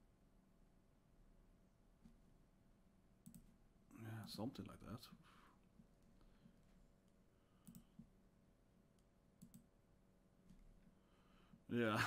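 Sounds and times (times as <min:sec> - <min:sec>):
faint low hum: 0:00.0 - 0:12.0
faint clicks: 0:03.2 - 0:03.5, 0:05.7 - 0:08.2, 0:08.9 - 0:09.7.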